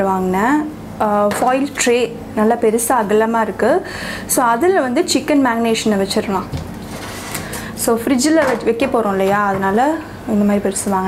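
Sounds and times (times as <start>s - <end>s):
woman talking: 0.0s - 6.6s, 7.8s - 11.0s.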